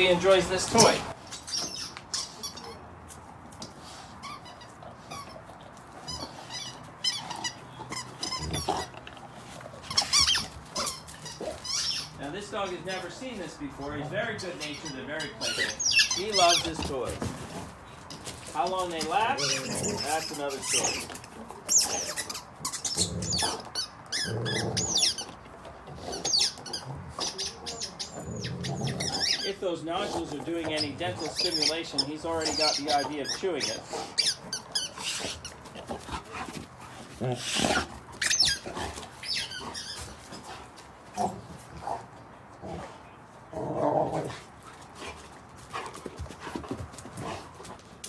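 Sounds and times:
chew toy squeaking: 0:01.3 - 0:02.9, 0:04.2 - 0:09.0, 0:09.8 - 0:12.2, 0:14.6 - 0:16.9, 0:19.3 - 0:25.4, 0:26.0 - 0:36.2, 0:37.6 - 0:40.3.

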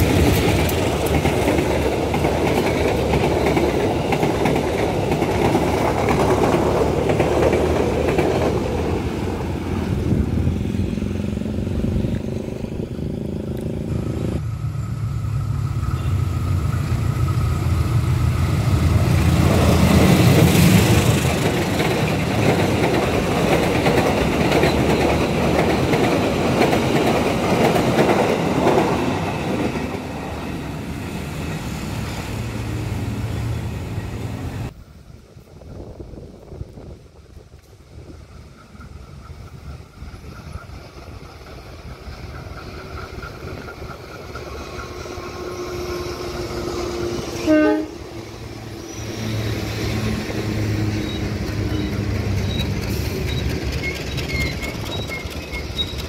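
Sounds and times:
diesel train approaching: 0:00.0 - 0:56.0
train carriages rolling past: 0:00.0 - 0:56.0.

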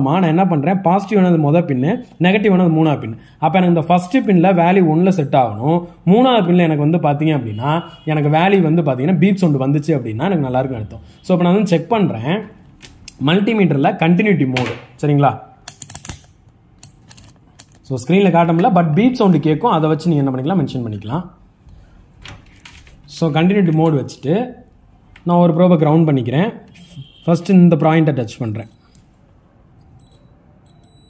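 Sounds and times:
multimeter continuity beep: 0:28.5 - 0:29.0, 0:29.9 - 0:31.0.

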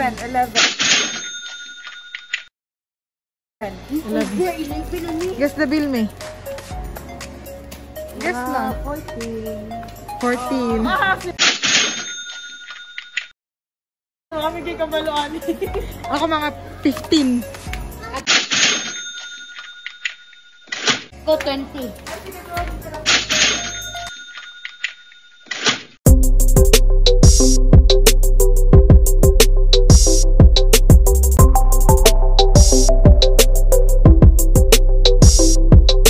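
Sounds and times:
bell-like ding: 0:01.2 - 0:02.3, 0:11.8 - 0:13.1.

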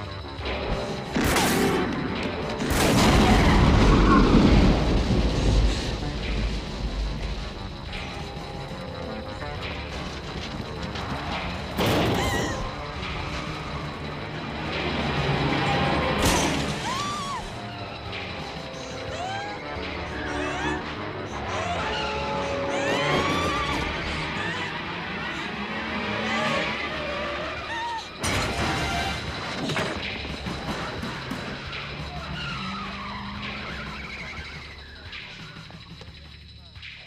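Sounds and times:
orchestral film score: 0:00.0 - 0:36.2
deep rumbling impact: 0:02.0 - 0:08.0.

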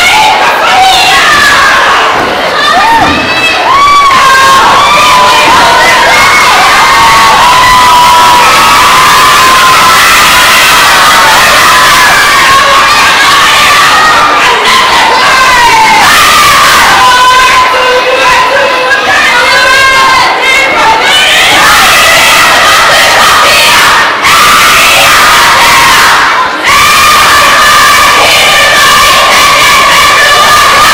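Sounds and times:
girls shouting a chant: 0:00.0 - 0:30.9.

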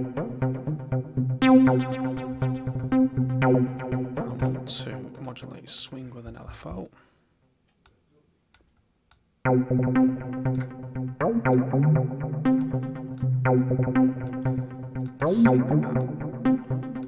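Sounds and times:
bass-heavy synth arpeggio: 0:00.0 - 0:04.8, 0:09.4 - 0:17.0.

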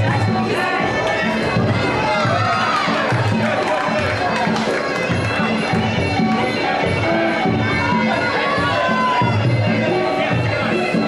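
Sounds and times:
crowd noise and voices: 0:00.0 - 0:11.0.

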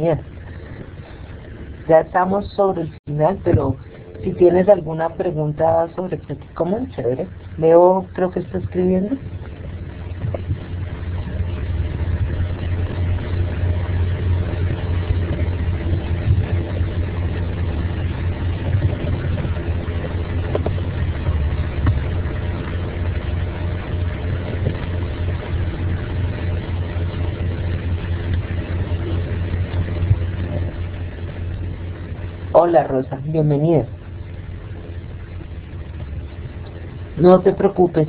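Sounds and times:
low mechanical rumble and hum: 0:00.0 - 0:38.0.

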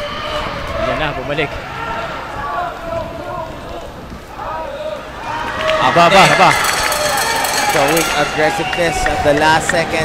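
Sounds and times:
people calling out and talking: 0:00.0 - 0:10.0.

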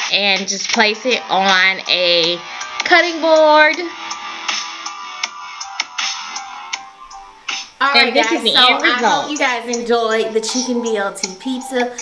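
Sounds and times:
instrumental music with steady beat: 0:00.1 - 0:12.0
woman speaking: 0:07.8 - 0:12.0.

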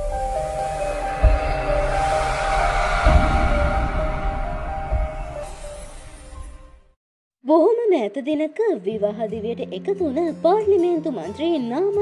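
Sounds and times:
deep bass boom: 0:00.0 - 0:06.8
hissing whoosh: 0:00.0 - 0:06.8.

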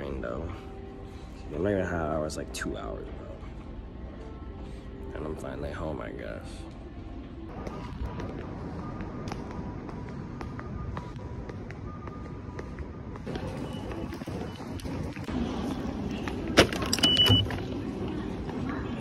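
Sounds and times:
station concourse background noise: 0:00.0 - 0:19.0
card reader beep: 0:16.6 - 0:17.7.

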